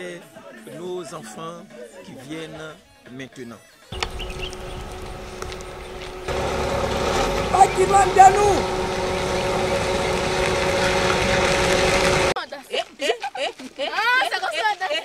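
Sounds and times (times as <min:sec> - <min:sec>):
car driving past on dirt road: 0:04.0 - 0:12.4
shouted voices: 0:06.4 - 0:11.8.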